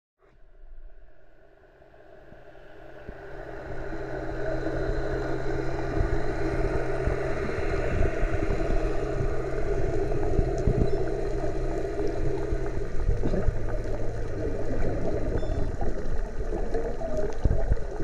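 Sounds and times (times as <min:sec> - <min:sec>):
boat engine droning underwater: 0:00.4 - 0:18.0.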